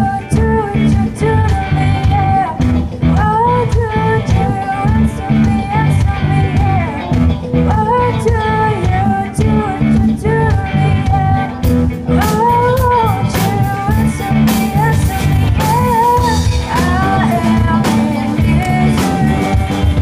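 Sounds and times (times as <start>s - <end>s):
bass guitar: 0.0s - 20.0s
drum kit: 0.0s - 20.0s
electric guitar: 0.0s - 20.0s
woman singing: 0.0s - 20.0s.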